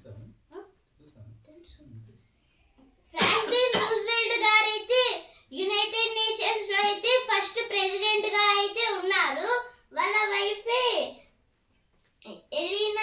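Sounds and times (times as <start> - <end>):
child singing: 3.2 - 9.0.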